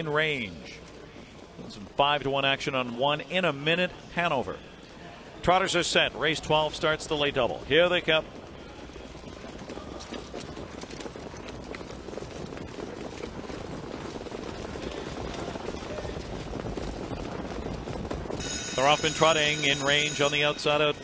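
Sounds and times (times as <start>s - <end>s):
rumble of hooves and wheels: 0.0s - 21.0s.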